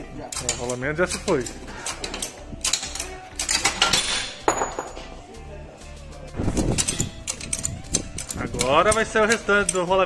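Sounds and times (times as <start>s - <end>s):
metal tools clinking and knocking: 0.2s - 5.2s, 6.5s - 9.9s.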